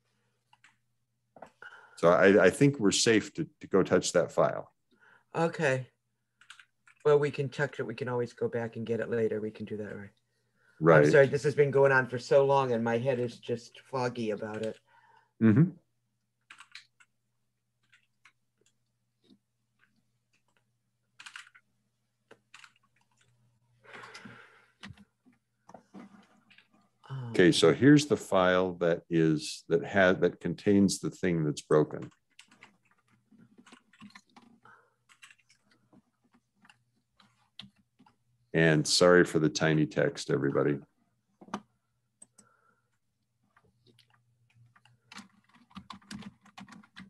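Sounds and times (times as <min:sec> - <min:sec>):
computer keyboard typing: 0:06.4 - 0:07.0, 0:16.4 - 0:17.1, 0:17.8 - 0:20.6, 0:21.2 - 0:21.7, 0:22.3 - 0:25.1, 0:32.0 - 0:38.2, 0:43.8 - 0:47.0.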